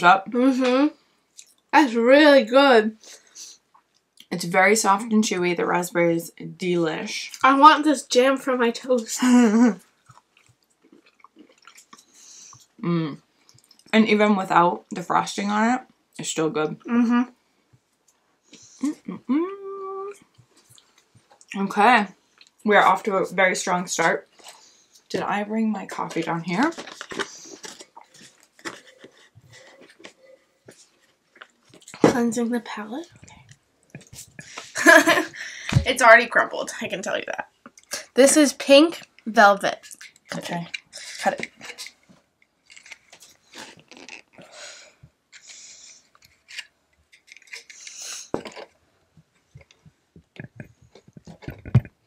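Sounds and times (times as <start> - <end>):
cookie crunching and crumbling: 25.1 - 32.0, 39.8 - 44.4
sipping through a straw: 47.6 - 48.3.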